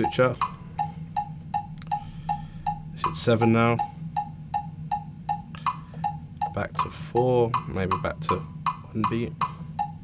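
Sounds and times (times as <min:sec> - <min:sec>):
higher accented metronome click: 0:00.0 - 0:10.0
metronome clicking: 0:00.0 - 0:10.0.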